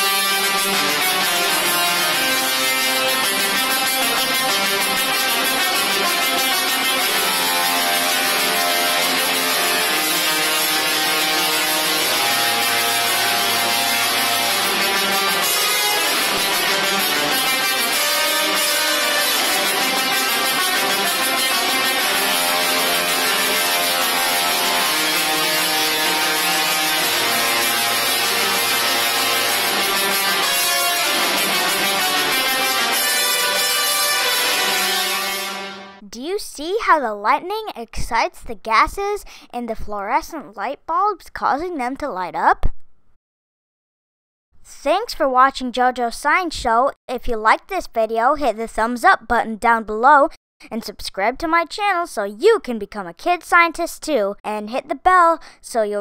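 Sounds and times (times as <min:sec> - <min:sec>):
musical tesla coils buzzing tune: 0:00.0 - 0:36.0.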